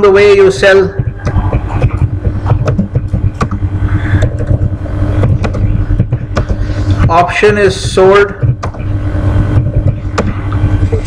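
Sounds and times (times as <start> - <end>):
constant hum: 0.0 - 11.0
low rumble: 0.8 - 11.0.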